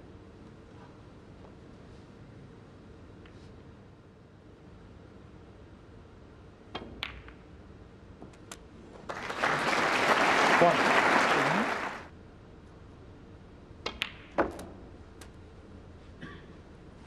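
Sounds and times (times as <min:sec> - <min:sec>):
snooker balls clicking together: 0:06.8 - 0:07.4, 0:13.8 - 0:15.4
audience applause: 0:09.0 - 0:12.1.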